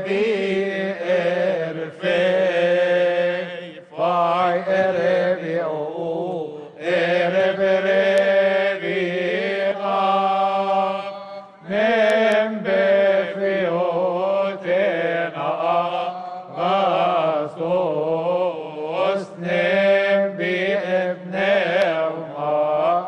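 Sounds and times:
choir chanting a hymn: 0.0s - 23.0s.

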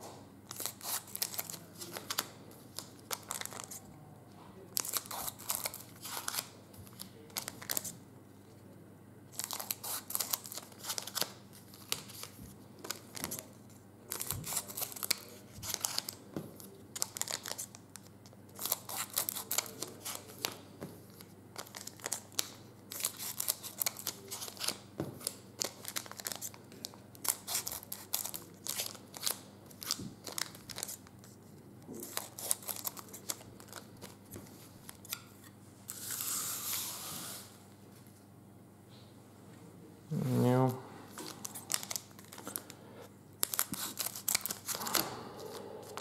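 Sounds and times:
foil wrappers crinkling: 0.5s - 3.8s, 9.3s - 18.0s, 18.6s - 31.0s, 32.0s - 34.2s, 41.1s - 42.8s, 43.4s - 45.0s.

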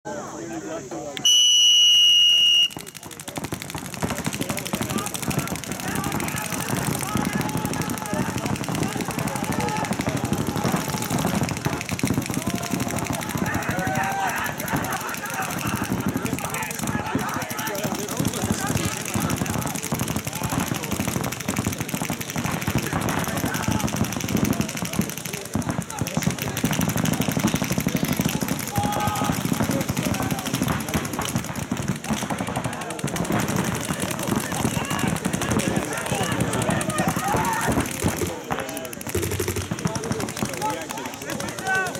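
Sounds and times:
paintball markers firing rapidly: 1.2s - 41.9s
people shouting: 1.6s - 41.9s.

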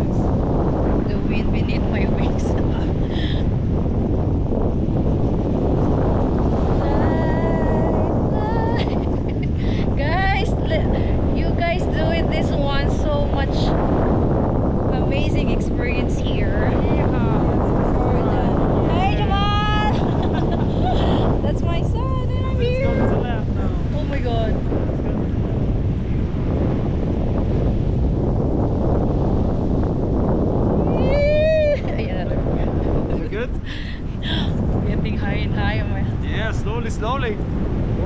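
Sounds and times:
wind buffeting microphone: 0.0s - 38.0s
wordless voice sounds: 15.0s - 20.0s.

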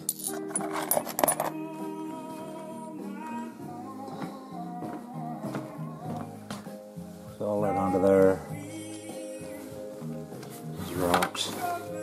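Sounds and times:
background guitar music: 0.0s - 12.0s.

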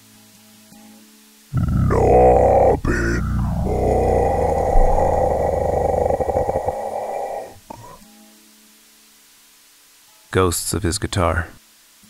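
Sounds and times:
loud rough growl: 1.6s - 8.0s.

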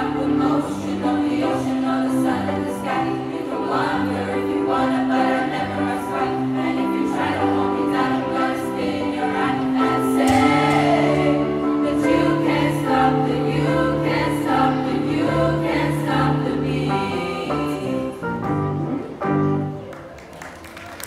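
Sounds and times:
girls' choir singing in harmony: 0.0s - 18.8s
rhythmic keyboard accompaniment: 0.0s - 20.2s.

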